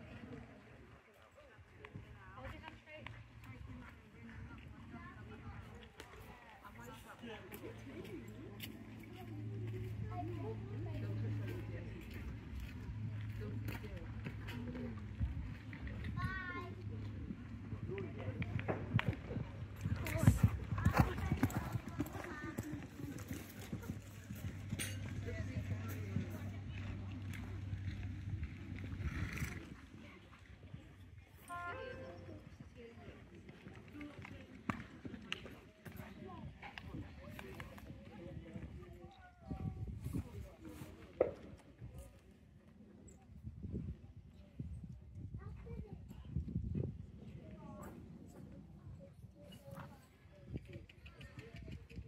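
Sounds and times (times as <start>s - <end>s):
horse hoofbeats on sand: 16.7s - 29.0s.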